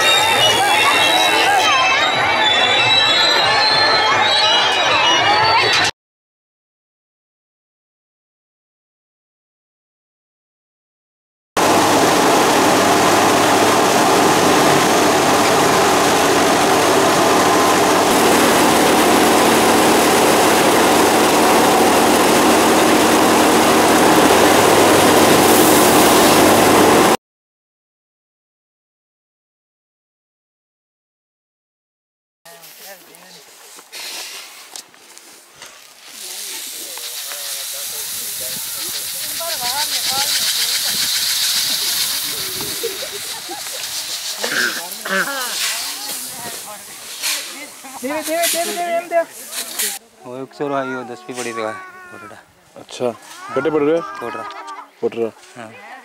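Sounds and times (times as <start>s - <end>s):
engine hum: 11.6s - 27.2s, 36.2s - 47.4s
threshing machine running: 11.6s - 27.2s, 36.1s - 49.0s
grain pouring onto heap: 36.0s - 48.8s.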